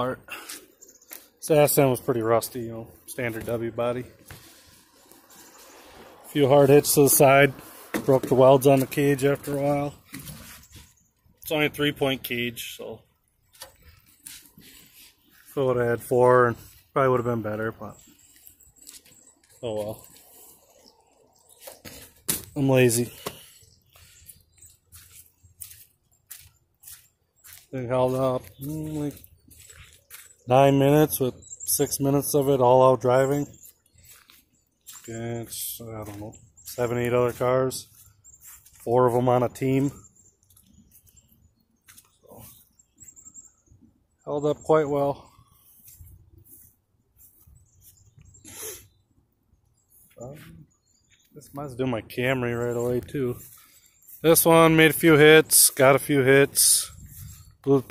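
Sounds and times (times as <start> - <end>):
breathy sniff: 48.4 - 49.0.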